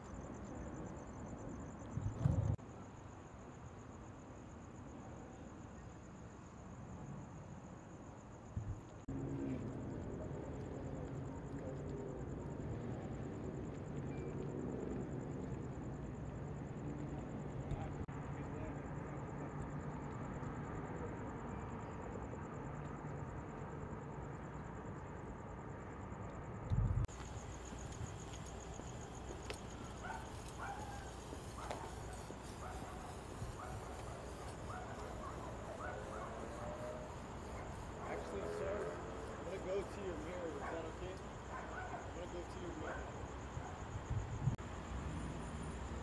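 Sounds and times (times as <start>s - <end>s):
thump: 2.0s - 2.6s
distant voices: 27.2s - 43.8s.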